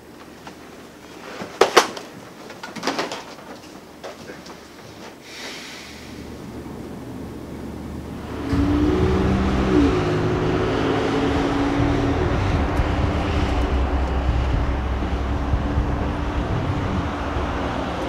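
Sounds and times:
road rumble: 6.2s - 18.0s
car engine: 6.3s - 18.0s.

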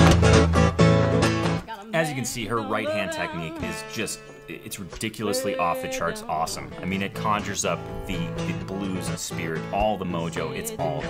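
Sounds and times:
slide acoustic guitar blues: 0.0s - 11.0s.

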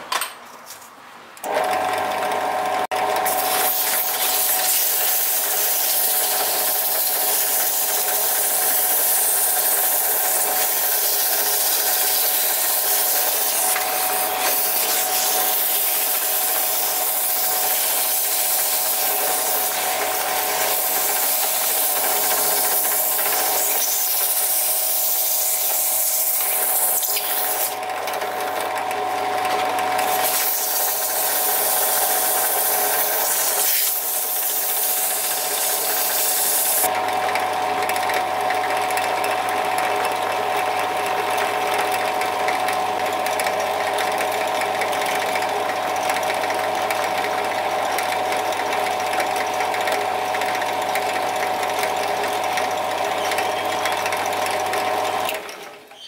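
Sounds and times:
sandpaper hissing against wood: 3.3s - 27.8s, 30.1s - 36.9s.

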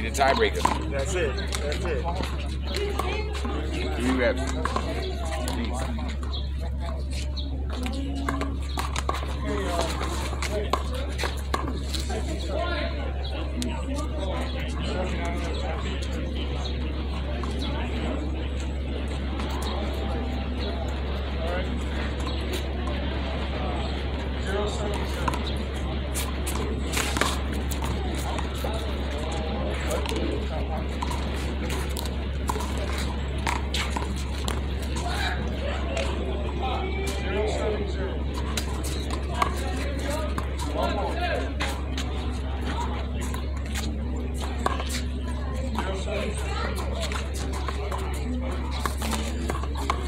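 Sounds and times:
background voices chatter: 0.0s - 50.0s
steady low hum: 14.9s - 50.0s.

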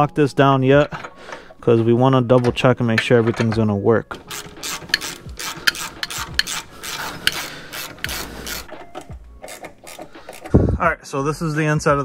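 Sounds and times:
metal scraping: 0.7s - 10.8s
hand ratchet clicking: 2.4s - 10.6s.

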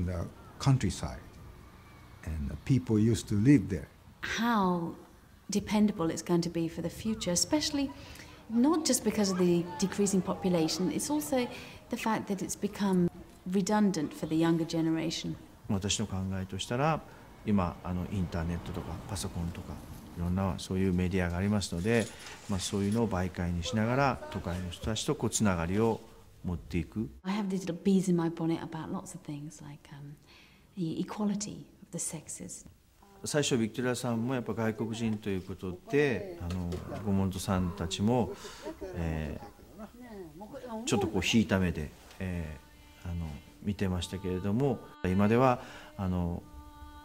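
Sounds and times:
man speaking in low voice: 2.2s - 4.0s, 15.6s - 27.2s, 33.2s - 39.9s, 40.8s - 46.4s
woman chanting: 4.2s - 15.5s, 23.7s - 24.8s, 42.6s - 47.0s.

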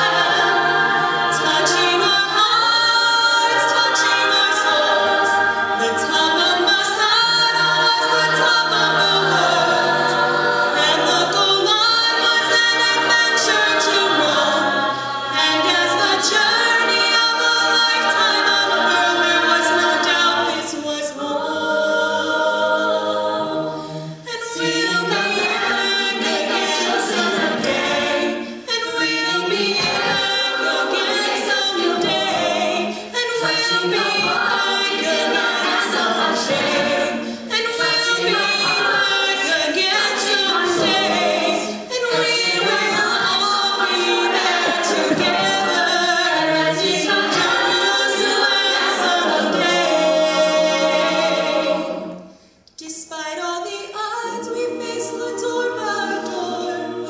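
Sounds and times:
choir backing vocals: 0.0s - 57.0s.

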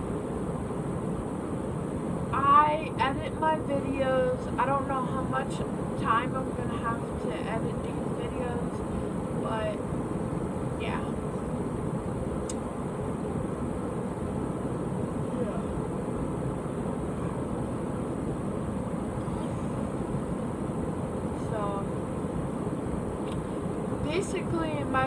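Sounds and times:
faint voice: 15.3s - 15.8s.

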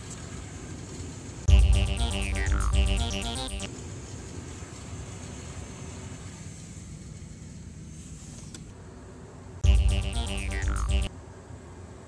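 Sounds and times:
loud synth music: 1.5s - 3.7s, 9.6s - 11.1s.

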